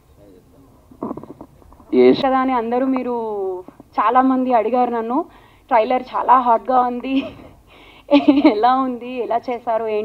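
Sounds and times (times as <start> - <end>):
woman speaking into a microphone: 1.9 - 7.5, 8.1 - 10.0.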